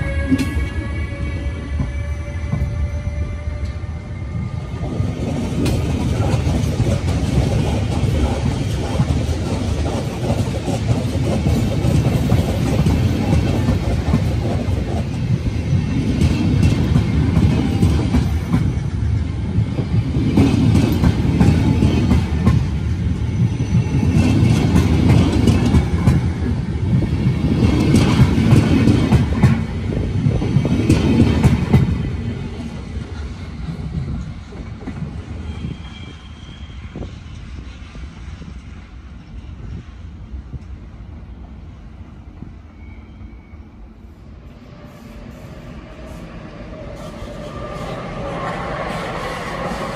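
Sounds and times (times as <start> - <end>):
train coaches rumbling past: 0.0 - 49.9.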